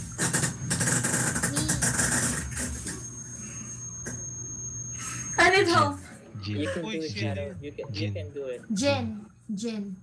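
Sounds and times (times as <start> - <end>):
high electronic whine: 0.0 - 9.2.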